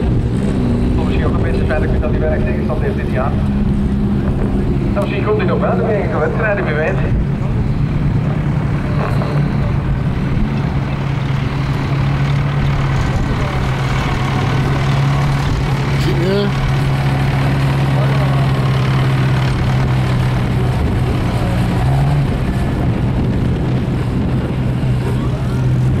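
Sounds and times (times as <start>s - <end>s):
race car engine running: 0.0s - 26.0s.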